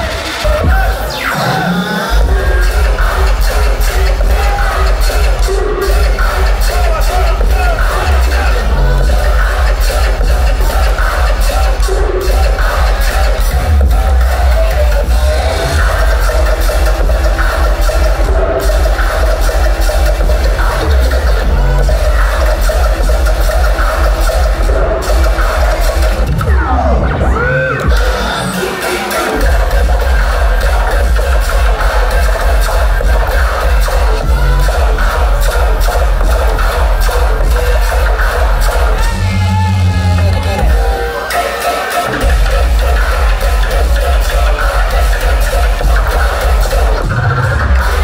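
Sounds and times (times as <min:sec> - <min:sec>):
loud dubstep with heavy sub-bass: 0:00.0 - 0:48.0.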